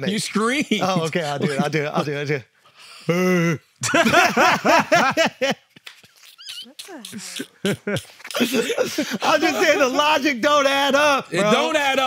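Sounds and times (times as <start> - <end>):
men laughing with wheezes: 3.8 - 10.0.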